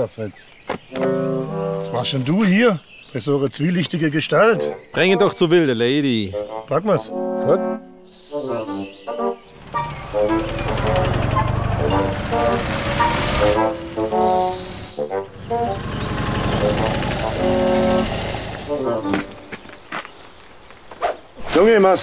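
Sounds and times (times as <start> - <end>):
background music: 1.0 - 2.6, 4.1 - 19.5
motorcycle engine rumbling: 9.4 - 20.4.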